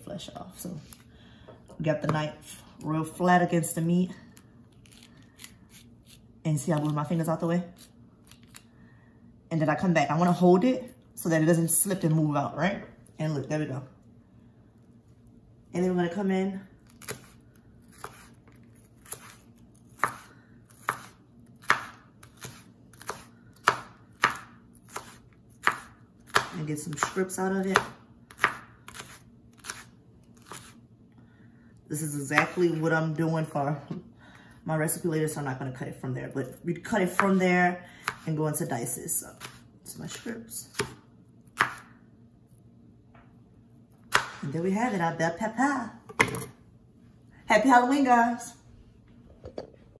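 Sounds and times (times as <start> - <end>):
knife chopping on wooden board: 17.0 - 18.3, 19.0 - 30.7, 41.6 - 41.9
knife slicing on wooden cutting board: 17.0 - 18.4.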